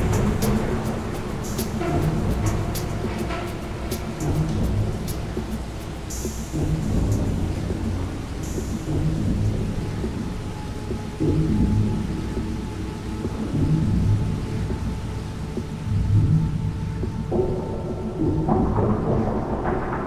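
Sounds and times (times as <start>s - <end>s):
ambient electronic music: 0.0s - 20.0s.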